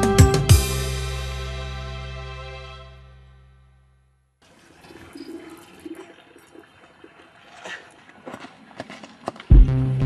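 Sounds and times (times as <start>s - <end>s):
background music: 0.0s - 3.8s.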